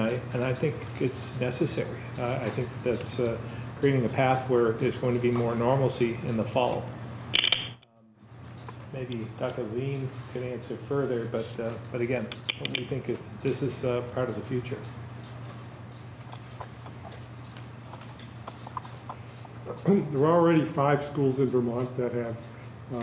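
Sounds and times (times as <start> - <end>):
low room hum: 0.0 - 23.0
sharp clicks: 7.3 - 7.8, 12.2 - 13.0.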